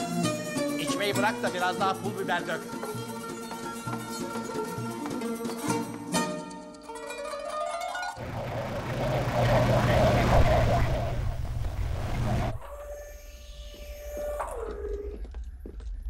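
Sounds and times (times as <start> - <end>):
low rumble with rushing noise: 8.2 - 12.7
gliding electronic tones: 8.2 - 14.8.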